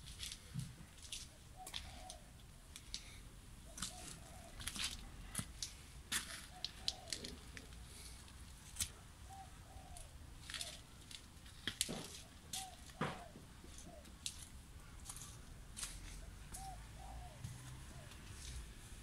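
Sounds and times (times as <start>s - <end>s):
faint bird calls: 1.2s - 5.6s, 6.2s - 11.1s, 12.1s - 18.9s.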